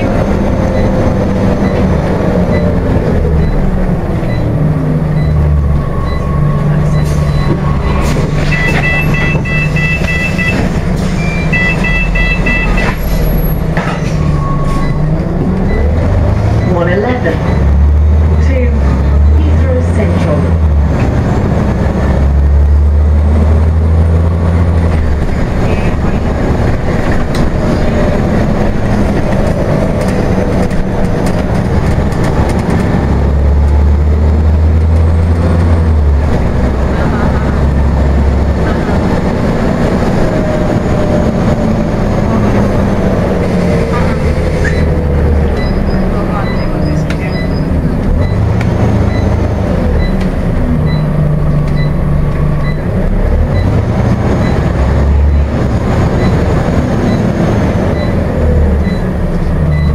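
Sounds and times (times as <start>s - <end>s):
bus engine rumbling: 0.0s - 59.9s
road noise: 0.0s - 59.9s
faint regular beep: 6.0s - 13.5s, 45.6s - 48.5s, 50.9s - 51.1s, 51.7s - 52.8s.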